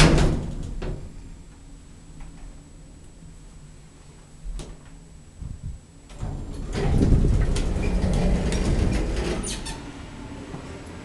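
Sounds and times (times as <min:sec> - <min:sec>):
elevator doors sliding: 0:06.1 - 0:11.0.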